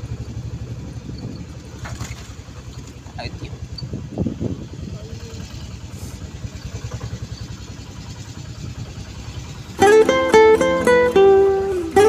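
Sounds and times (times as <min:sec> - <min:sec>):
auto-rickshaw engine puttering: 0:00.0 - 0:12.0
loud plucked-string music: 0:09.7 - 0:12.0.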